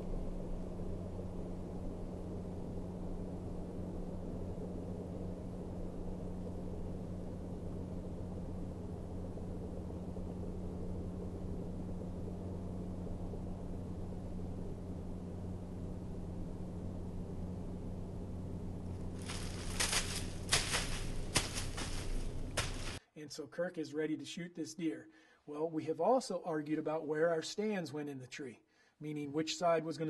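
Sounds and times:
low hum: 0.0 - 23.0.

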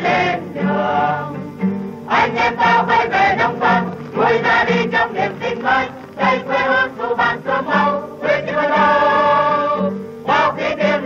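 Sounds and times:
choir singing sustained notes: 0.0 - 11.0.

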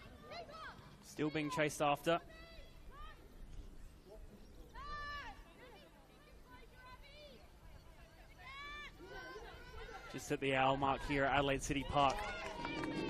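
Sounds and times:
players shouting calls: 0.0 - 3.4.

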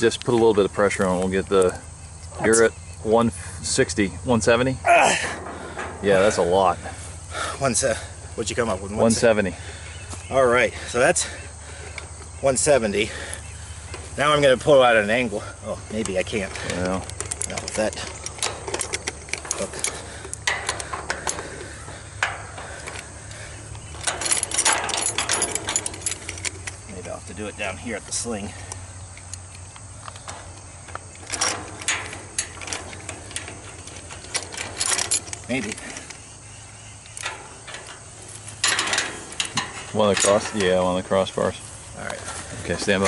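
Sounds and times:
metal rigging hardware clinking: 0.1 - 43.0
rustling: 5.1 - 43.0.

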